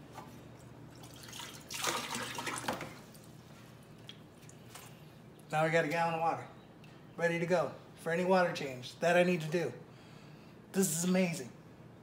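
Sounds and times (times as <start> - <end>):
water splashing in a bucket: 0.9 - 3.4.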